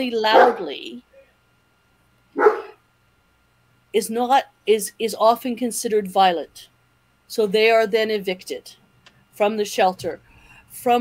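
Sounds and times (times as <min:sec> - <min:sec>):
sharp bark-like call: 0:02.4 - 0:02.8.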